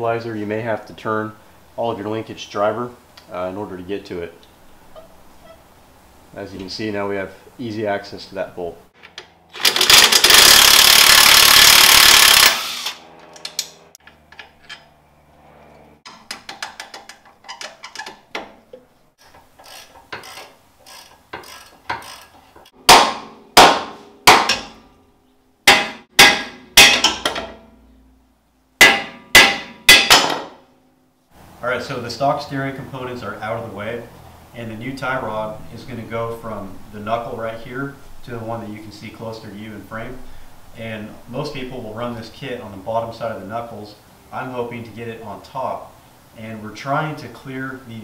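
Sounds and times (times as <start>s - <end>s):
impact wrench hammering: 9.6s - 13.7s, 19.9s - 24.8s, 25.6s - 27.6s, 28.8s - 30.6s
clinks of tools and parts: 13.2s - 15.0s, 16.1s - 22.7s
hammer striking metal: 22.8s - 24.9s, 25.6s - 27.7s, 28.8s - 30.6s.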